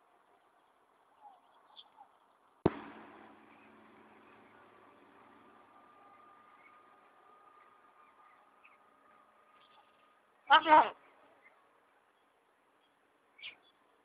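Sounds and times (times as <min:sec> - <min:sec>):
sharp bang: 0:02.6 - 0:07.3
bird chirps: 0:06.0 - 0:14.0.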